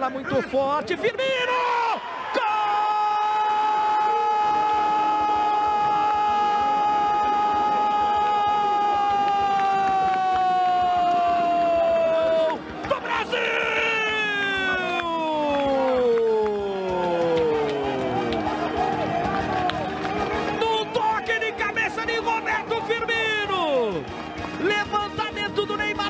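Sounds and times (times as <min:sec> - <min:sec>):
commentator's drawn-out goal cry: 0:10.8 - 0:17.9.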